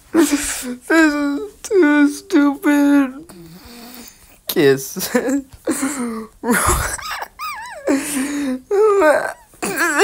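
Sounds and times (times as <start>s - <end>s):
person laughing in squeals: 6.5s - 8.2s.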